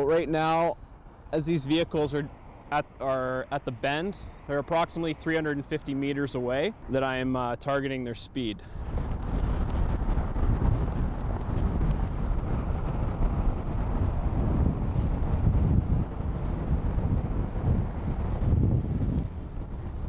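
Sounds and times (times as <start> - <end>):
road traffic: 0.0 - 20.0
wind buffeting microphone: 3.6 - 20.0.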